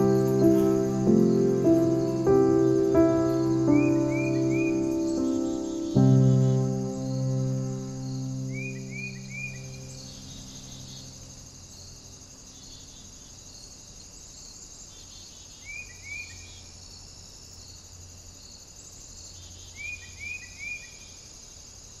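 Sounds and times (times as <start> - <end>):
crickets chirring: 0.0 - 22.0.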